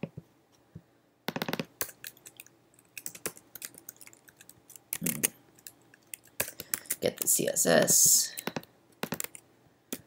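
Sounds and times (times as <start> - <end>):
keyboard keystrokes: 8.4 - 10.0.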